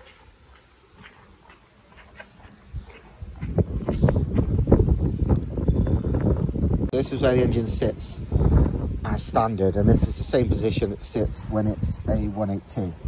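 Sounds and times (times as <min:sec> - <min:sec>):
faint footsteps: 0:00.0 - 0:06.4
microphone handling and buffeting: 0:01.0 - 0:12.2.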